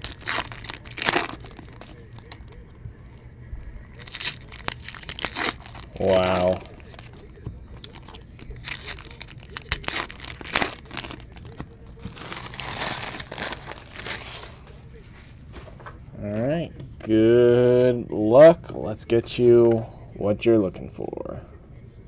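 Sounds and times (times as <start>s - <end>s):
foil wrappers crinkling and tearing: 0.0s - 2.6s, 3.9s - 14.8s.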